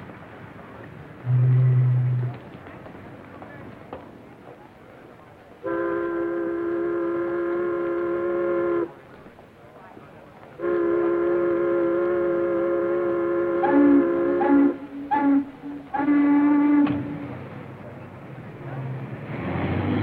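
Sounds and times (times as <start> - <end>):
chord horn long blasts: 1.2 - 2.4, 5.6 - 9.0, 10.6 - 17.4.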